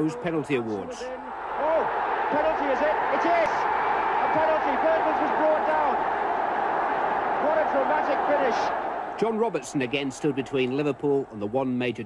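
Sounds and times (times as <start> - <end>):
stadium crowd cheering and shouting: 0.0 - 11.6.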